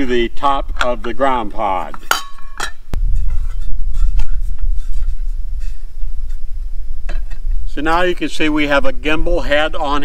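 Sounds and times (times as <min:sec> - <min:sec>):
metal pan clink: 0:02.0 - 0:02.8.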